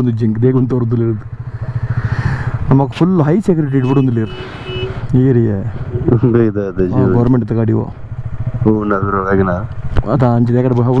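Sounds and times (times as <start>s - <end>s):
motorcycle engine running: 0.0s - 5.1s, 5.7s - 11.0s
man talking: 2.7s - 4.4s, 5.1s - 8.0s, 8.6s - 11.0s.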